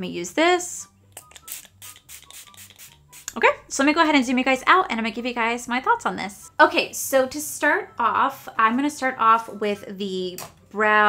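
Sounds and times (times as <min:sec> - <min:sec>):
pump spray bottle spritzing: 0:01.2 - 0:03.3.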